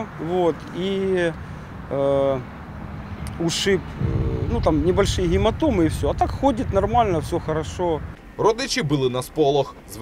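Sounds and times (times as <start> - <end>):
man talking: 0.0 - 2.5, 3.3 - 10.0
street traffic rumble: 0.0 - 10.0.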